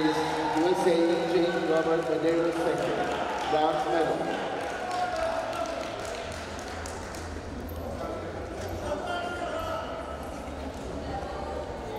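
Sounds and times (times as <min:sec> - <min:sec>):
indistinct echoing voices: 0:00.0 - 0:06.1.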